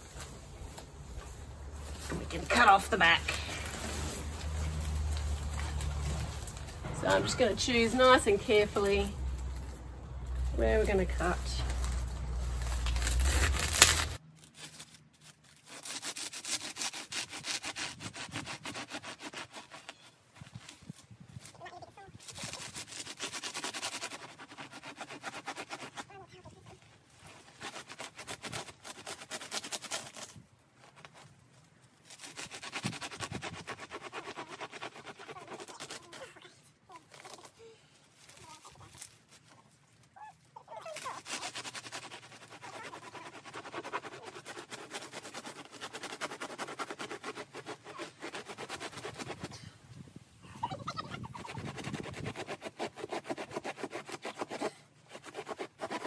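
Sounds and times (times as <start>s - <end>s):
hand saw cutting dry fibres: 0.6s - 20.2s, 22.2s - 31.3s, 31.9s - 39.2s, 40.6s - 49.6s, 51.1s - 56.0s.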